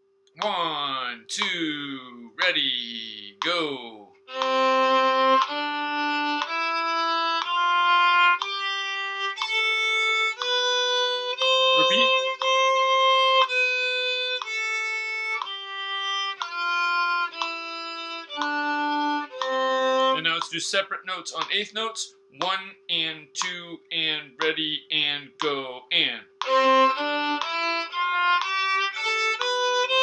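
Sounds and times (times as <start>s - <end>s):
violin playing a scale: 4.3s - 20.4s, 26.4s - 30.0s.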